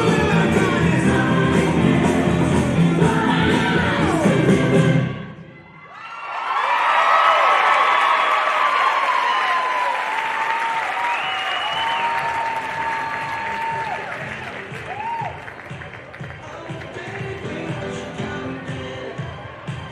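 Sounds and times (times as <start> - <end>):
whoops and shouts: 5.7 - 14.2, 14.8 - 15.4
audience applauding: 6.3 - 17.2.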